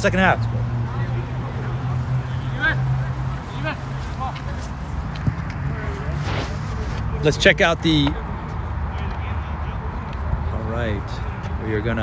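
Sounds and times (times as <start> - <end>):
low hum: 5.4 - 7.4.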